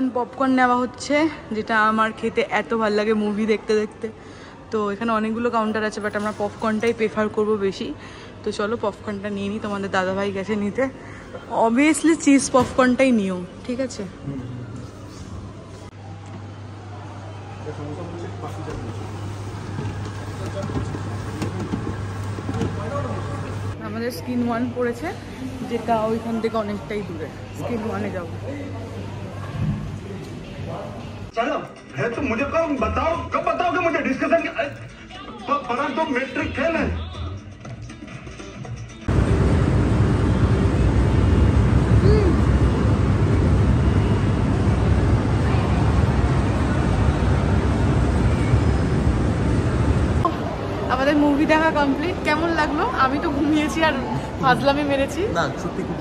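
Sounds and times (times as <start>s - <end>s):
people chattering: 6.8s - 15.7s, 16.5s - 31.3s, 39.1s - 56.0s
crowd hubbub: 13.9s - 31.3s, 39.1s - 56.0s
low building rumble: 39.1s - 55.2s.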